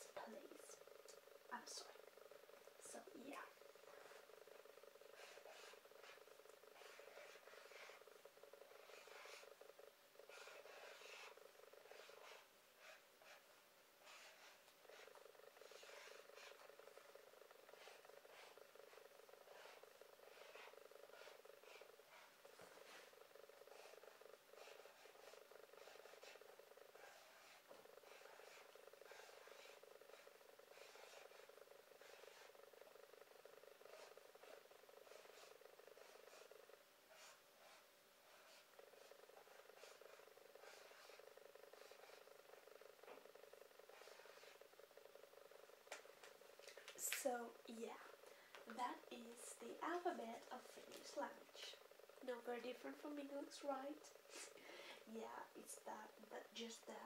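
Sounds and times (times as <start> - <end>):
marker squeaking on paper: 5.1 - 6.2, 6.8 - 8.1, 8.8 - 9.5, 10.3 - 13.4, 14.0 - 26.4, 27.0 - 32.6, 33.5 - 36.5, 37.1 - 42.2, 43.9 - 44.6.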